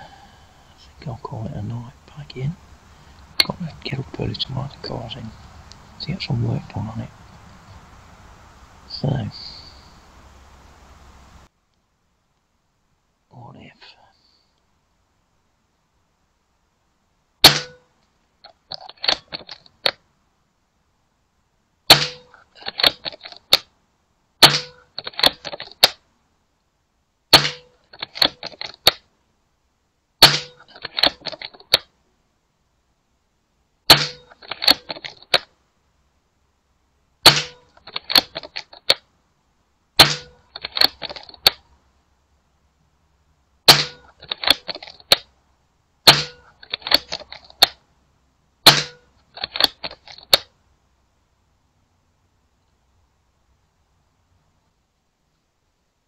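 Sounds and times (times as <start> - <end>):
air rifle shots: 17.4 - 17.9, 21.9 - 23.7, 24.4 - 26.0, 27.3 - 29.0, 30.2 - 31.9, 33.9 - 35.5, 37.2 - 39.0, 40.0 - 41.6, 43.7 - 45.2, 46.0 - 47.8, 48.6 - 50.5
rifle reloading clicks: 18.7 - 20.0, 21.9 - 23.7, 24.4 - 26.0, 27.3 - 29.0, 30.2 - 31.9, 33.9 - 35.5, 37.3 - 39.0, 40.0 - 41.6, 43.7 - 45.3, 46.1 - 47.8, 48.7 - 50.5.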